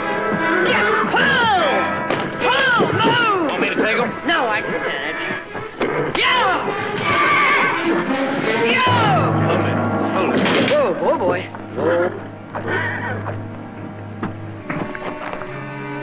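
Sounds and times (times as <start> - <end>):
horses whinnying: 0.0 - 10.8, 11.5 - 13.7
orchestral music: 0.0 - 16.0.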